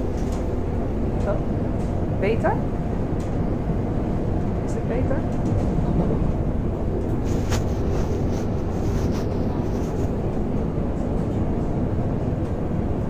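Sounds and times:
train rumble inside carriage: 0.0s - 13.0s.

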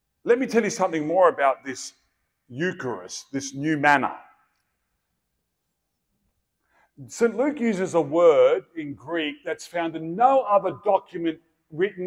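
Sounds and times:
man speaking over amplification: 0.3s - 4.4s, 7.0s - 12.0s.

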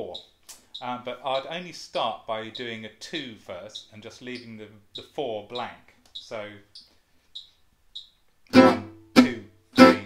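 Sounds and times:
guitar chord stabs: 8.5s - 10.0s.

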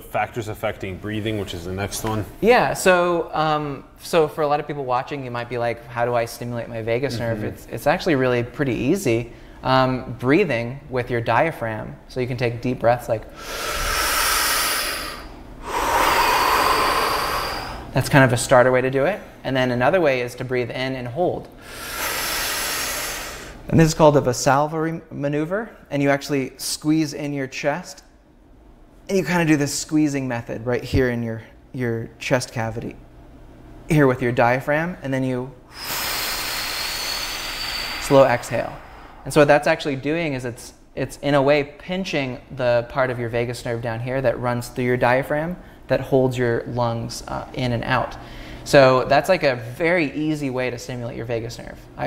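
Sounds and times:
man breathing in: 13.3s - 17.9s, 21.6s - 23.7s, 35.7s - 39.3s, 48.2s - 48.7s
man breathing out: 13.4s - 17.9s, 21.6s - 23.6s, 35.7s - 39.3s
man exhaling slowly: 13.4s - 17.9s, 21.6s - 23.6s, 35.7s - 39.3s.

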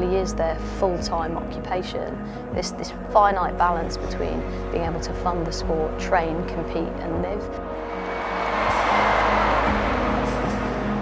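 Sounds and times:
music with sustained notes: 0.0s - 11.0s
stadium crowd cheering and clapping: 7.8s - 11.0s.

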